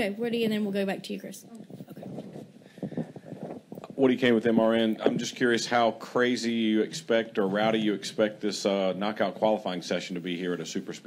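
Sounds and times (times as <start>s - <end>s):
microphone handling knocks: 1.6s - 5.4s.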